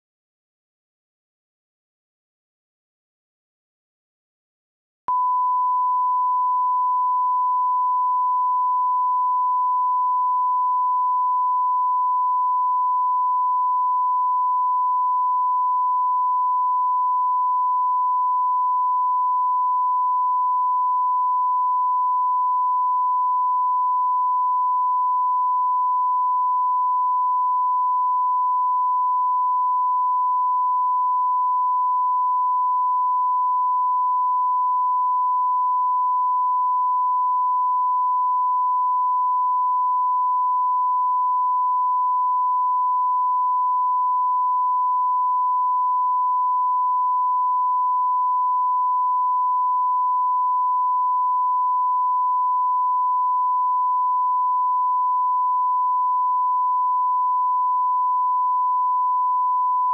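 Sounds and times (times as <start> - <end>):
sine-wave test tone: 5.1 - 59.9.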